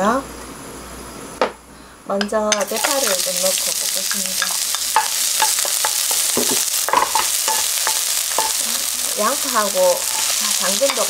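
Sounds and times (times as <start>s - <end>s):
onion sizzling in oil: 2.5s - 11.0s
spatula scraping and tapping pan: 4.3s - 8.8s, 9.6s - 11.0s.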